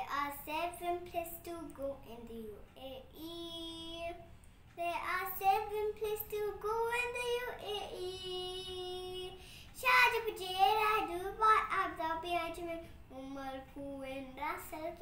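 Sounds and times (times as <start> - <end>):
girl singing a children's song: 0.0 - 15.0.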